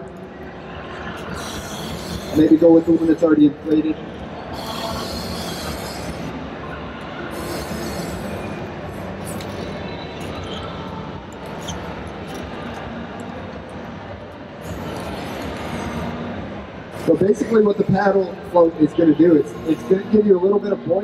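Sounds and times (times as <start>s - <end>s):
exhibition hall rumble and hiss: 0.0s - 21.0s.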